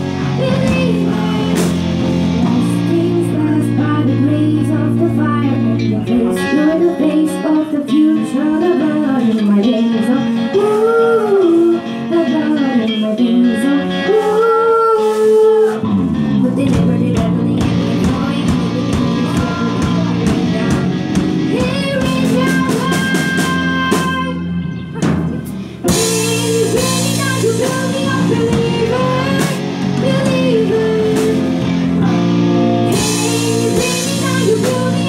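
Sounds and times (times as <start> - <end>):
backing music: 0.0 - 35.0
woman singing into a microphone: 0.0 - 35.0.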